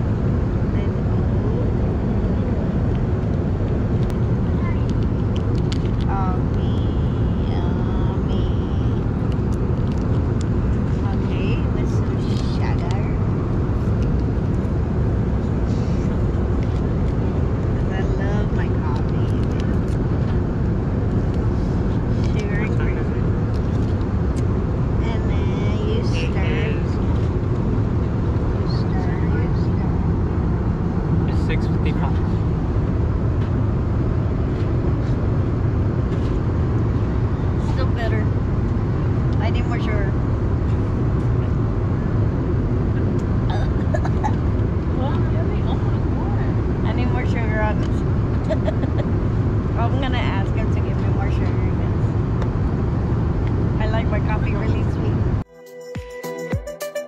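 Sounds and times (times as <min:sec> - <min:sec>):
airliner cabin engine rumble: 0:00.0 - 0:55.5.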